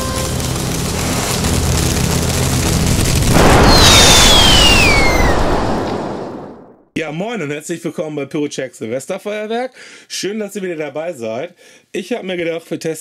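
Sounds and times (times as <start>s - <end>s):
rushing swell: 0.4s - 6.8s
explosion-like boom: 1.0s - 6.9s
downward gliding whistle: 3.6s - 5.5s.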